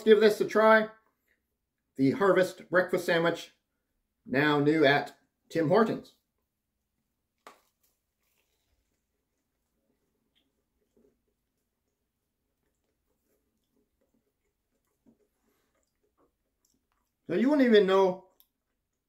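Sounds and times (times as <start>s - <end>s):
faint chewing: 7.3s - 17.3s, 18.2s - 19.0s.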